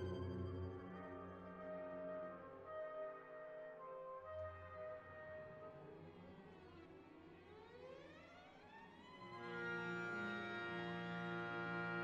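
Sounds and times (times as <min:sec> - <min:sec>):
orchestra sustained chord: 0:00.0 - 0:02.2.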